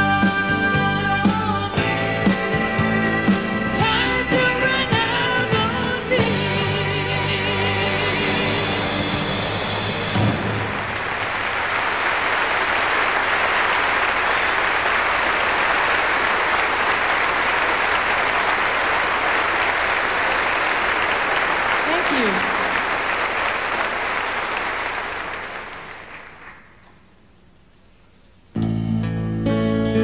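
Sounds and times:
audience applauding: 8.3s - 26.8s.

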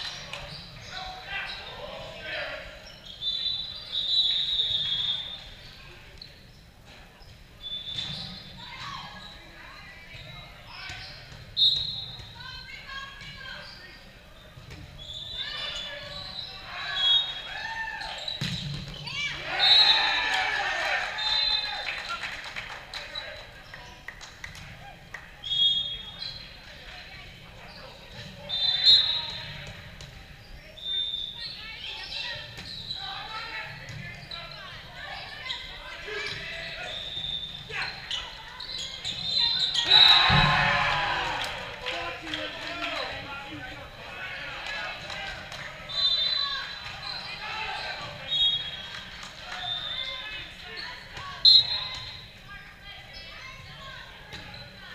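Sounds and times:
sneakers squeaking on court: 0.1s - 1.8s, 2.7s - 17.4s, 18.0s - 19.9s, 27.6s - 40.6s, 45.8s - 48.8s, 53.0s - 54.9s
volleyball hits and bounces: 18.3s - 19.1s, 39.9s - 40.8s
players calling: 30.8s - 52.4s.

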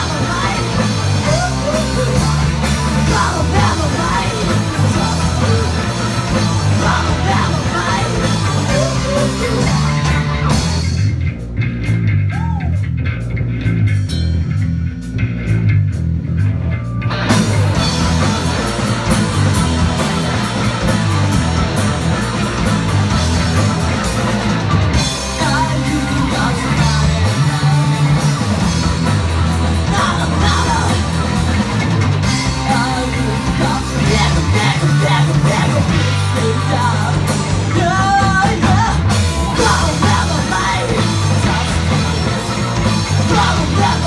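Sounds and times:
bass guitar: 0.0s - 44.0s
electric guitars: 0.0s - 44.0s
live rock band: 0.0s - 44.0s.

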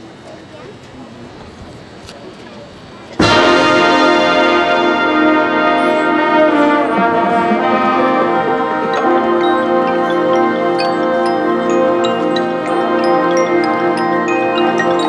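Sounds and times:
marching band brass chord: 3.2s - 15.0s.

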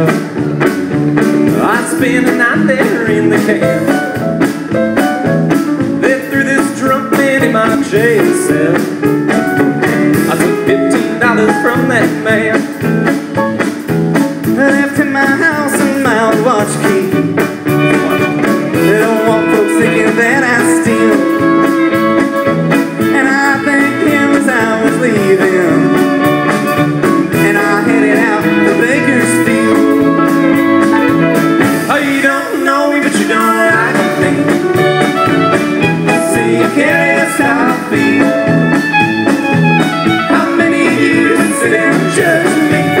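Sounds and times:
bass and drum beat: 0.0s - 43.0s
guitar: 0.0s - 43.0s
live country band playing: 0.0s - 43.0s.

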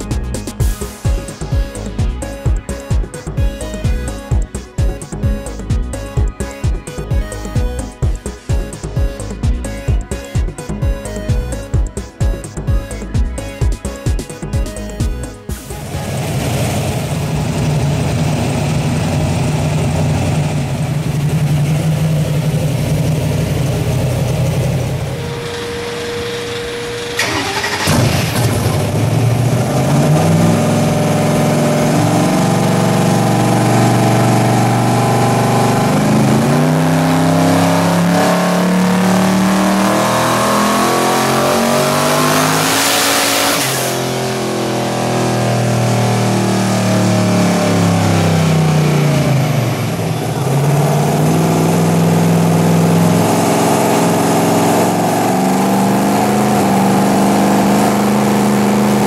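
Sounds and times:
car engine revving on dyno: 15.8s - 59.0s.

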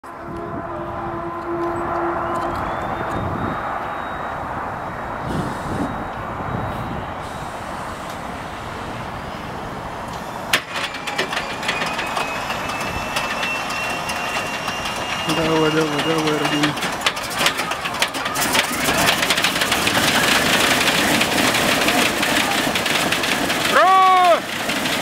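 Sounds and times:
rising whine: 0.0s - 24.3s
engine cranking: 10.1s - 25.0s
rapid clicking: 14.0s - 25.0s.

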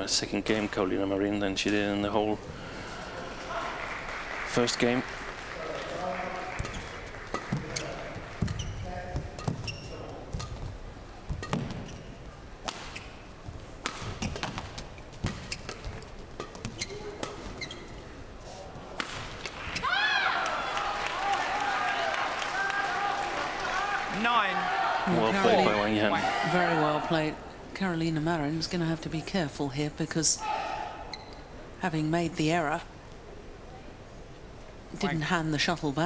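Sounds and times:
court shoes squeaking: 6.5s - 19.9s, 31.0s - 31.5s
rackets striking shuttlecock: 11.3s - 11.9s, 13.8s - 17.6s.

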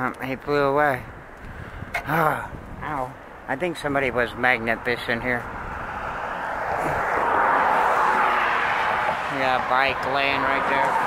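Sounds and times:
passing vehicle rushing: 4.2s - 11.0s.

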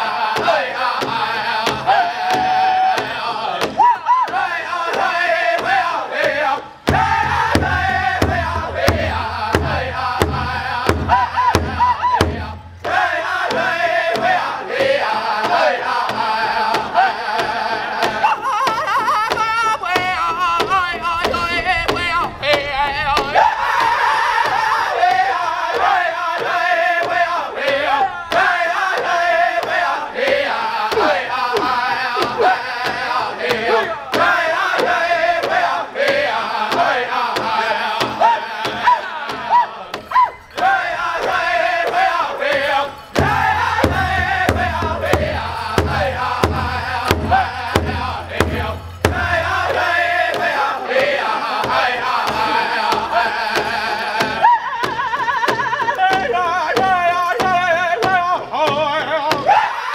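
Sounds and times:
group singing high: 0.0s - 59.9s
large bass drum beats: 0.4s - 59.7s
short high calls: 39.5s - 40.8s.

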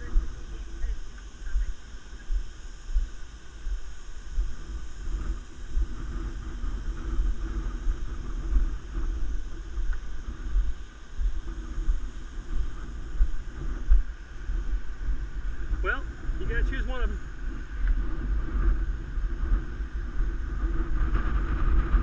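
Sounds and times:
faint voices: 0.0s - 4.4s, 15.4s - 18.8s
wind rumbling on microphone: 0.0s - 22.0s
man speaking: 15.8s - 17.2s.

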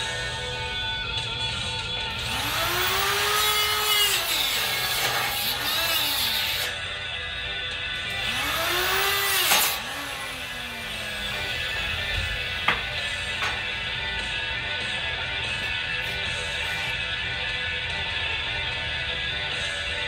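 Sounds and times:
angle grinder grinding steel: 2.1s - 17.4s.

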